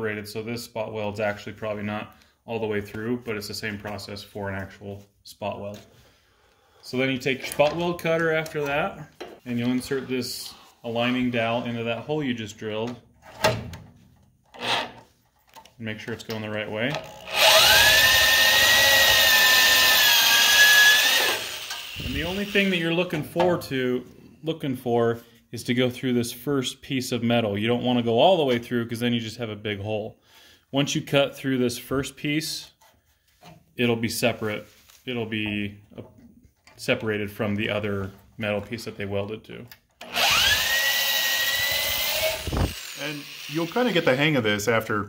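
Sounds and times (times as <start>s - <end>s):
electric drill cutting sheet steel: 17.1s - 22.9s, 40.0s - 44.4s.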